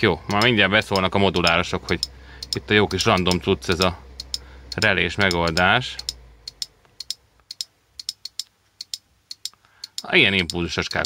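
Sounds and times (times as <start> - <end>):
relay clicking: 0.3 - 11.0.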